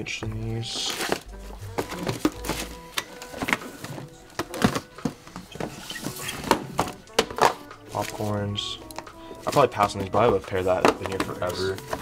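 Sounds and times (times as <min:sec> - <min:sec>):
background music: 0:00.0 - 0:12.0
shoeboxes knocking and thunking: 0:00.0 - 0:12.0.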